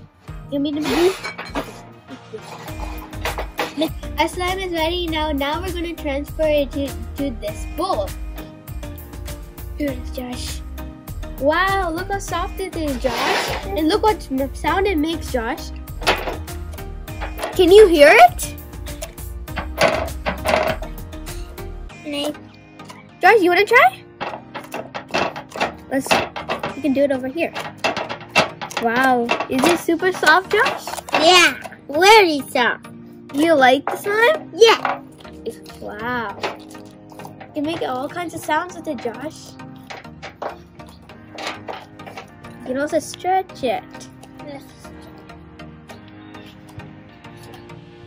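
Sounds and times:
background music: 0:00.0 - 0:48.0.

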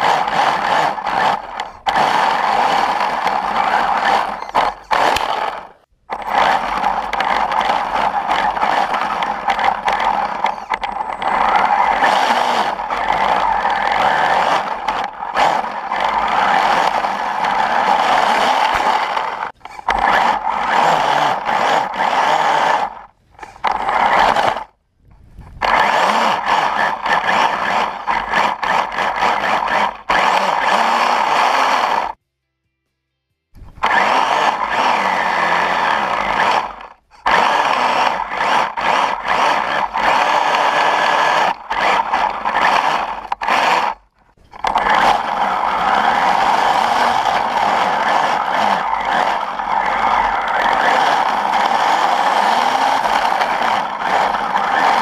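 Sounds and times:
electric motor whining: 0:00.0 - 0:24.8, 0:25.5 - 0:32.2, 0:33.6 - 0:55.0
track scraping through snow: 0:00.0 - 0:32.2, 0:33.7 - 0:55.0.

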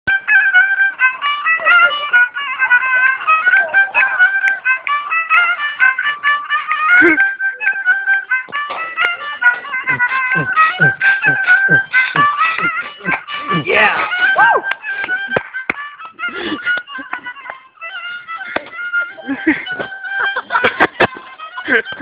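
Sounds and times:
horn violin fast melody: 0:00.1 - 0:22.0.

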